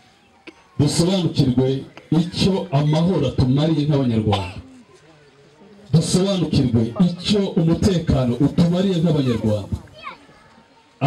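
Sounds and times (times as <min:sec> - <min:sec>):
faint crowd voices with children: 0:00.0 - 0:11.0.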